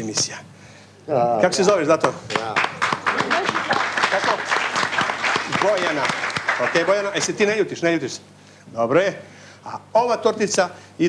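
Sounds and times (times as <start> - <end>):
audience applauding: 2.0 - 7.6.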